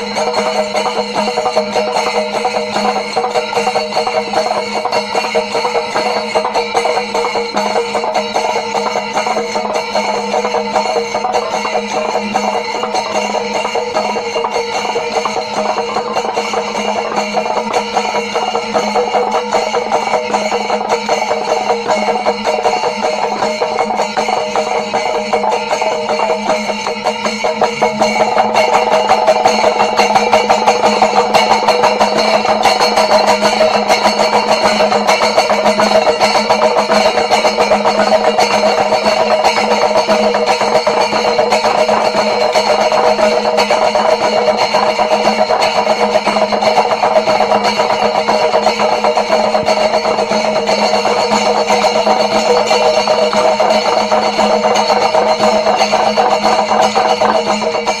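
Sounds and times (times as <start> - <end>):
brass hand cymbals clashing: 0.0 - 58.0
drums beaten rapidly with sticks: 0.0 - 58.0.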